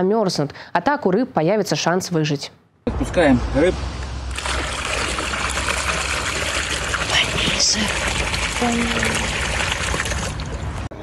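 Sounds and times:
water pouring into a pond: 0:04.3 - 0:10.9.

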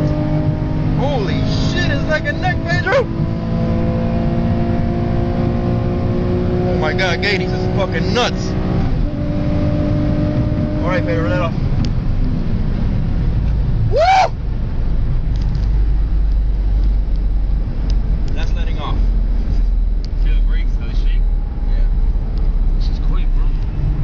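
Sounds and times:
car engine and road rumble: 0:00.0 - 0:24.0
person shouting: 0:13.9 - 0:14.4.

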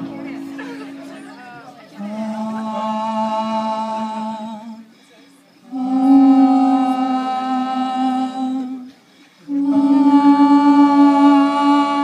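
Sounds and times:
voices humming long notes: 0:00.0 - 0:12.0.

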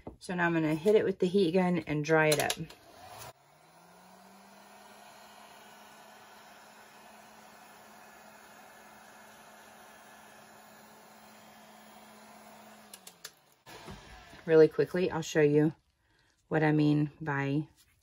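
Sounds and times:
heat gun fan humming: 0:02.3 - 0:14.4.

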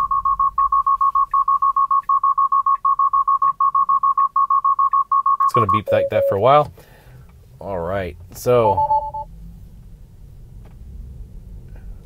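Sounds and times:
high electronic beeps: 0:00.0 - 0:06.4, 0:08.8 - 0:09.3.

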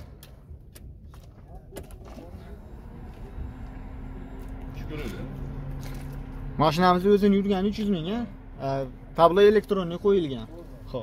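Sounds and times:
car engine idling: 0:00.0 - 0:11.0
steady hum: 0:02.1 - 0:11.0.

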